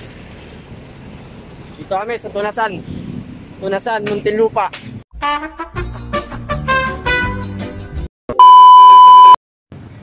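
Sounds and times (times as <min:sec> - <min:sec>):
music: 0:05.2 - 0:08.1
high steady beep tone: 0:08.3 - 0:09.4.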